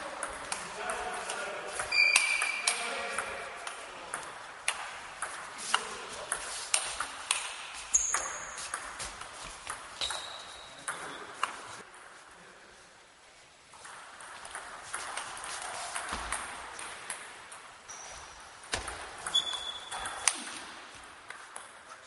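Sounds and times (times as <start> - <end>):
shoe squeak: 1.9 - 2.7, 7.9 - 8.7, 10.0 - 10.9, 17.9 - 18.4, 19.3 - 20.2.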